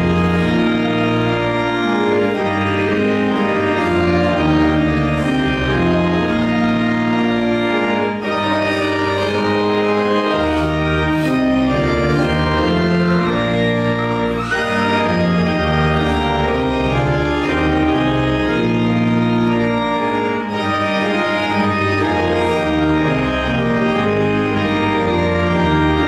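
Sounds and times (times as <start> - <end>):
church organ playing a hymn: 0.0 - 26.0.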